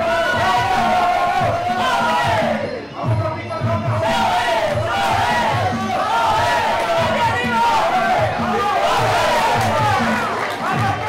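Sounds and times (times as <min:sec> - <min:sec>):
steady drum beat: 0:00.0 - 0:11.0.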